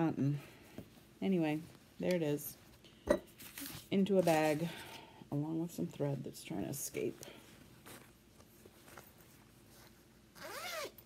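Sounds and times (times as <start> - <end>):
faint bag handling: 0.4 - 5.1, 7.0 - 11.0
zipper pulled on fabric bag: 9.8 - 11.0.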